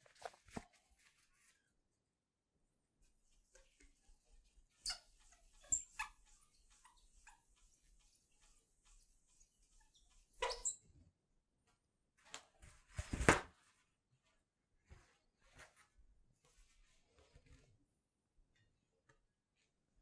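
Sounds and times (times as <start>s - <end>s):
sharp squeaks: 4.8s - 10.8s.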